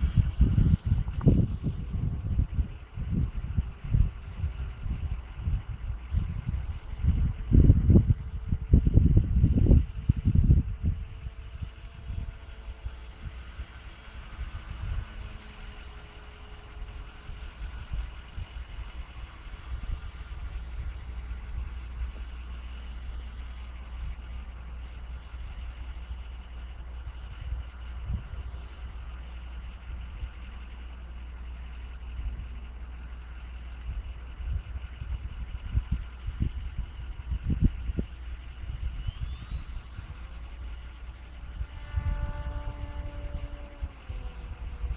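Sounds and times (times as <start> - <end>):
low drone: 0.0 - 44.9
model plane motor whine: 0.0 - 44.9
wind rumble on microphone: 0.0 - 44.9.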